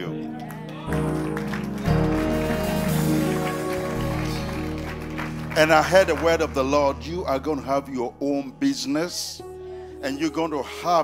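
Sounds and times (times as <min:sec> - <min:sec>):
held keyboard chords: 0:00.0 - 0:11.0
low bass: 0:00.9 - 0:10.6.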